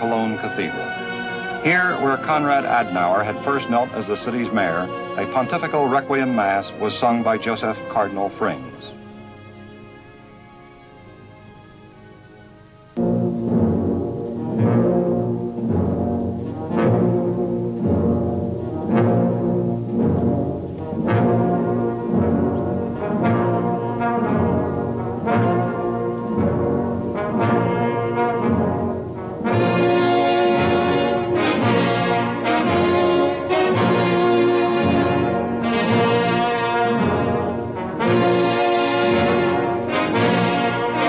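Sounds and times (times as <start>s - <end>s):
slow solemn brass music: 0.0s - 41.0s.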